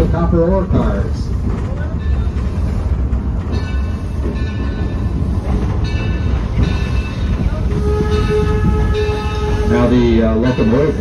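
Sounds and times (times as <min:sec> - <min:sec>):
steam whistle: 0:07.8 - 0:10.0.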